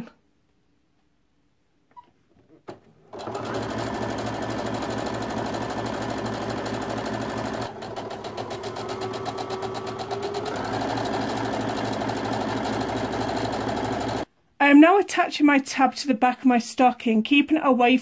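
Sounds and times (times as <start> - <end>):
sewing machine stitching: 2.7 - 14.3.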